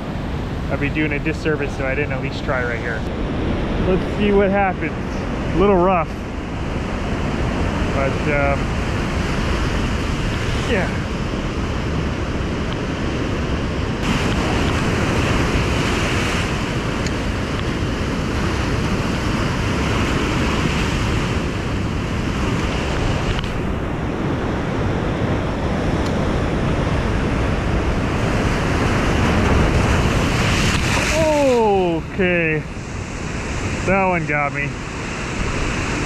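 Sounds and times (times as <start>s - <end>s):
wind on microphone: 0.0s - 36.0s
waves crashing on rocks: 0.1s - 36.0s.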